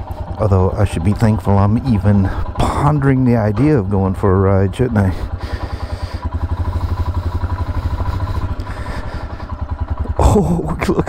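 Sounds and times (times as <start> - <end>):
motorcycle engine idling: 0.0 - 11.0.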